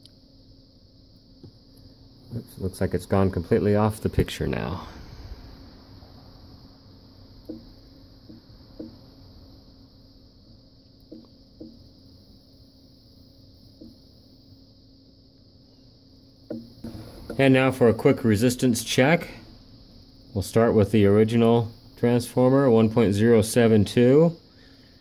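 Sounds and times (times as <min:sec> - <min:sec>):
faint steady hum: 0:00.0 - 0:25.0
high steady whine: 0:00.0 - 0:25.0.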